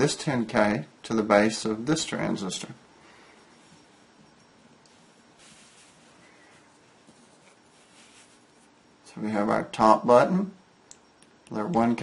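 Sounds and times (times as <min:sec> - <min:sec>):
faint hiss: 0:01.3 - 0:10.6.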